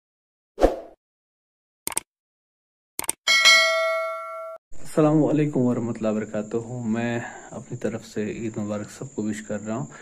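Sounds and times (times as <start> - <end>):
notification bell ding: 3.3 - 4.6.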